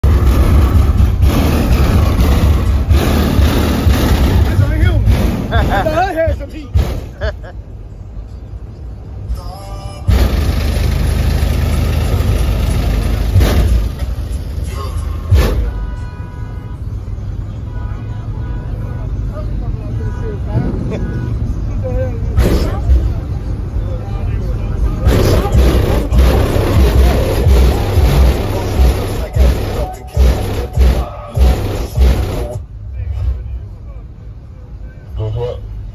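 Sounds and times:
loud burst of noise: 0:00.0 - 0:06.0, 0:10.1 - 0:14.3, 0:25.0 - 0:32.6
loud music with heavy bass: 0:00.0 - 0:07.5, 0:10.0 - 0:16.1, 0:25.0 - 0:32.7
people talking: 0:04.4 - 0:06.8, 0:18.0 - 0:31.6.

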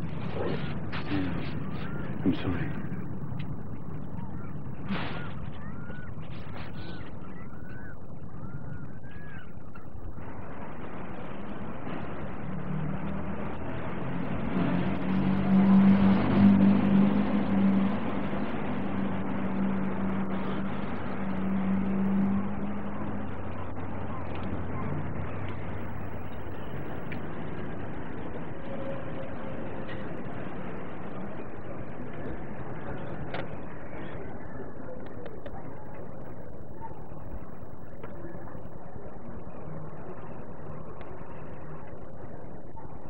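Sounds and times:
vehicle engine passing: 0:10.1 - 0:42.9.

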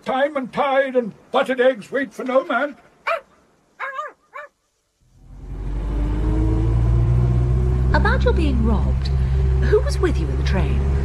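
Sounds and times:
dog barking: 0:03.0 - 0:04.6
car engine running: 0:05.1 - 0:11.0.

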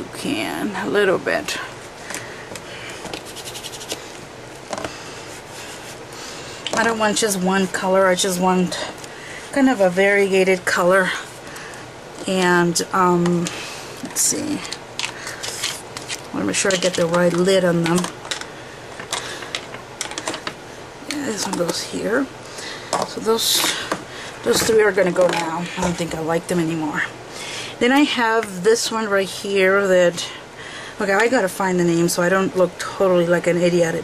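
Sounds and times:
fingers rubbing on paper: 0:03.2 - 0:04.1.

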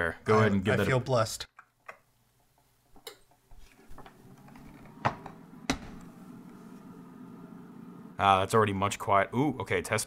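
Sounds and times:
computer fans humming: 0:04.2 - 0:09.5.

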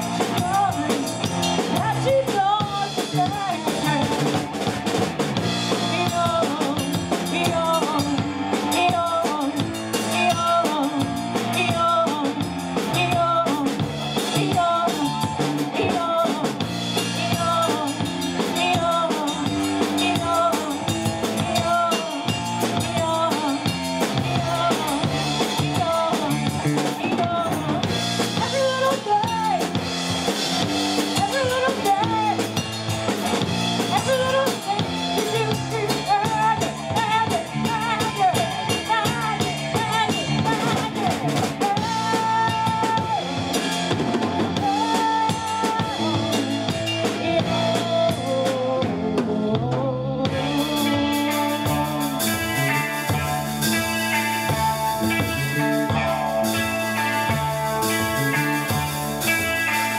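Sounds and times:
woman singing: 0:00.0 - 0:04.8, 0:05.4 - 0:59.9
bass guitar: 0:00.0 - 0:59.9
drum kit: 0:00.0 - 0:59.9
electric guitar: 0:00.0 - 0:59.9.

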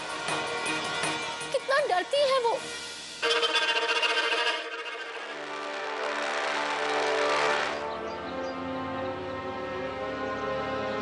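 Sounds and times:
dramatic background score: 0:00.2 - 0:11.0.

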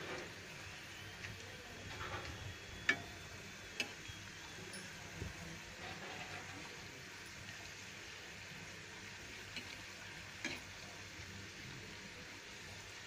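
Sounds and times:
food sizzling in oil: 0:00.0 - 0:13.0
spatula clinking against pan: 0:10.4 - 0:10.7.

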